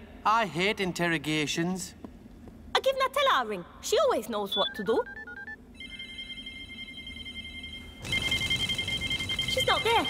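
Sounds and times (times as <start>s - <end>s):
phone keypad beeps: 4.5s - 5.6s
electronic ringing tone: 4.5s - 10.0s
trilling mobile ringtone: 4.5s - 10.0s.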